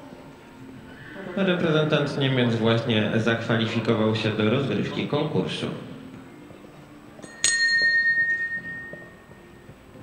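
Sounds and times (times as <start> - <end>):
bell strike ringing: 7.2 - 9.3.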